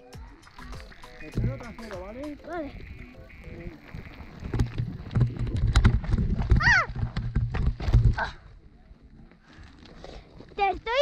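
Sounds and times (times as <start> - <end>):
mountain bike on rocky trail: 0.1 - 11.0
tyres and frame knocking on stones: 4.5 - 8.2.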